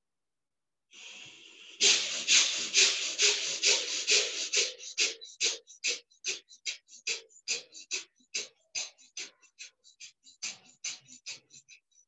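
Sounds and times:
hissing breath through nose: 0.9s - 11.7s
rapid forceful breaths: 1.0s - 12.0s.

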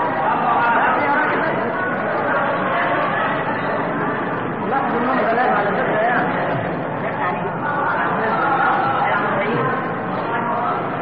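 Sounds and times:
audience murmuring and calling out: 0.0s - 11.0s.

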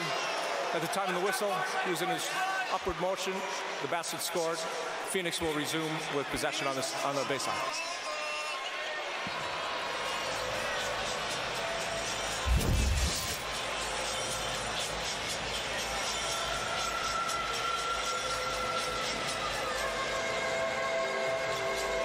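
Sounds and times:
arena crowd noise: 0.0s - 22.0s
music over sound system: 10.2s - 22.0s
loud low thump: 12.4s - 13.4s.

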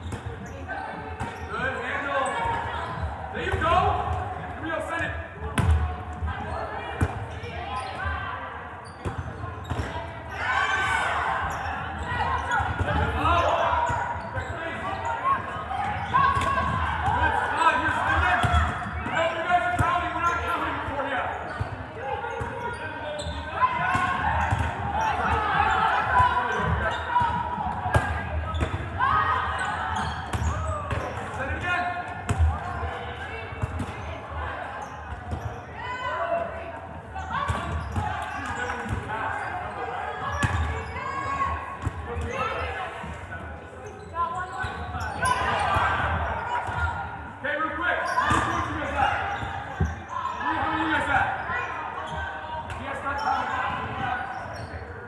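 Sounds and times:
calls and chatter of people: 0.0s - 55.0s.

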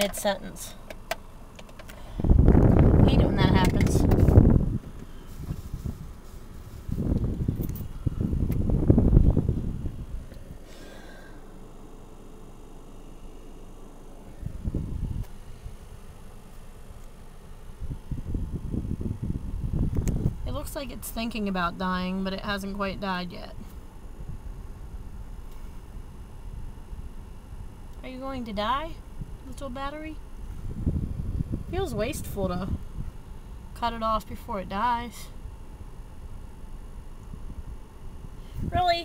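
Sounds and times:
camera handling rumble: 3.6s - 8.8s, 19.8s - 20.3s.

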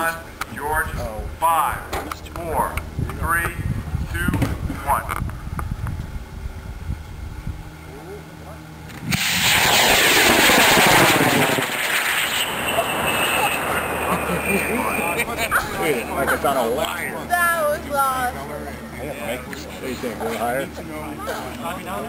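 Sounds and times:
rocket motor roaring: 8.9s - 17.1s.

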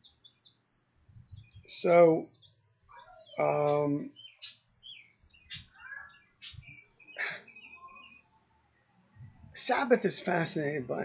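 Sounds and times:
harsh bird calls: 0.0s - 8.4s
small birds chirping: 0.0s - 11.0s.

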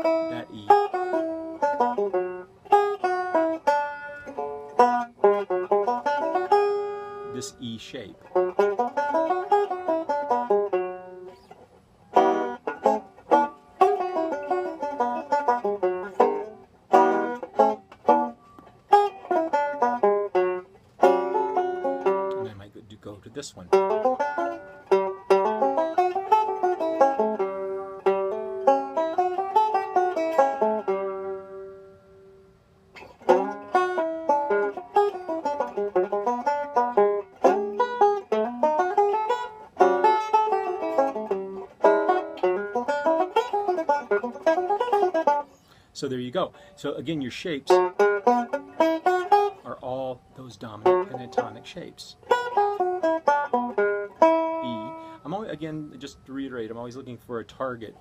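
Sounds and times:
banjo playing blues: 0.0s - 58.0s.

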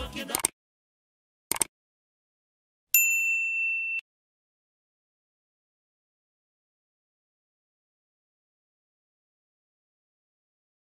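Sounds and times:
bright bell ding: 2.9s - 4.1s.

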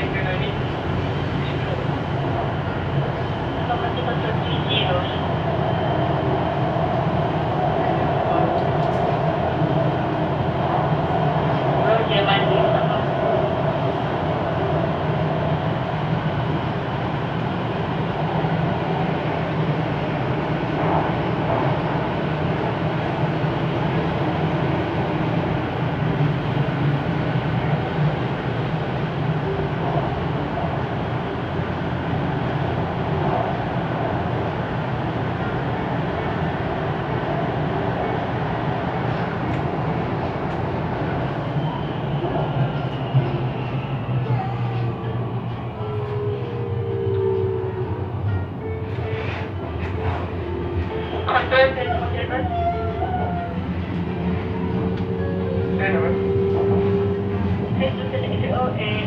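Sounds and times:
wheels rumbling on rail: 0.0s - 59.0s.

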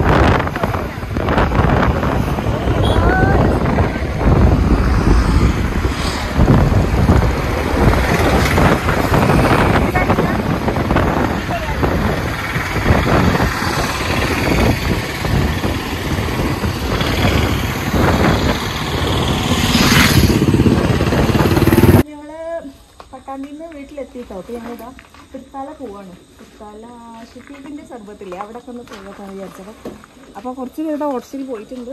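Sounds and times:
motorcycle engine: 0.0s - 22.0s
wind buffeting microphone: 0.0s - 22.0s
people talking: 0.3s - 1.3s, 2.7s - 4.3s, 9.5s - 12.2s, 22.0s - 31.9s.

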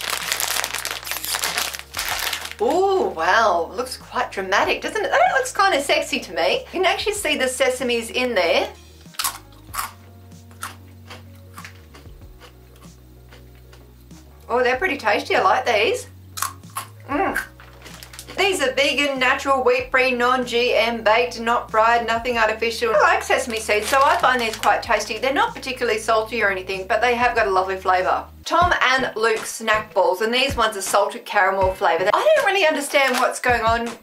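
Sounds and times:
plastic snack packet crinkling: 0.0s - 3.1s, 17.5s - 18.5s, 23.2s - 25.2s, 32.3s - 33.6s
rice cracker crunching: 0.0s - 3.1s, 9.1s - 13.4s, 16.4s - 18.4s, 23.2s - 25.1s, 32.7s - 33.5s.

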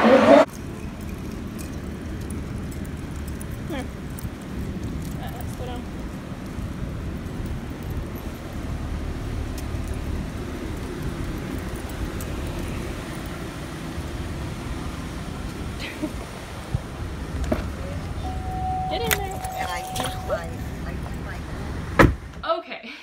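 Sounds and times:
road traffic rumble: 0.0s - 22.6s.

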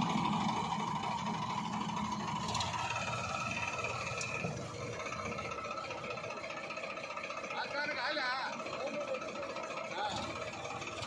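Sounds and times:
diesel tractor engines running: 0.0s - 11.0s.

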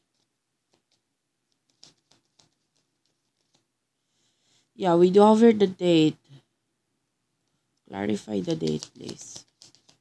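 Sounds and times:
cards being shuffled: 0.0s - 3.7s, 8.0s - 10.0s.

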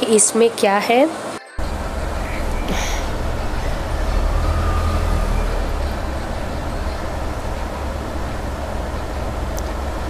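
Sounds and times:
steady low rumble: 1.6s - 10.0s.

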